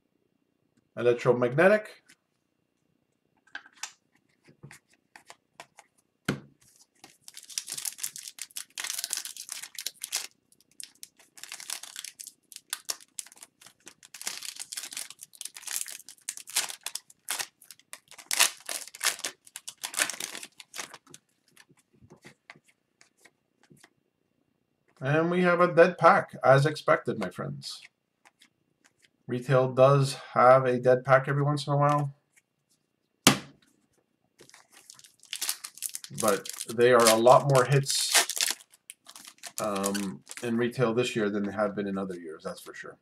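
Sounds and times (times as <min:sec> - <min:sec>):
foil wrapper crinkling and tearing: 0:06.8 - 0:21.8, 0:34.4 - 0:40.5.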